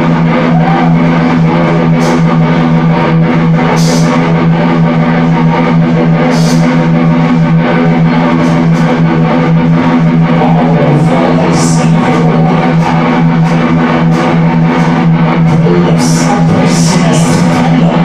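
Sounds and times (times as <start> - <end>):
bass: 0.0 - 18.0
drums: 0.0 - 18.0
electric guitar: 0.0 - 18.0.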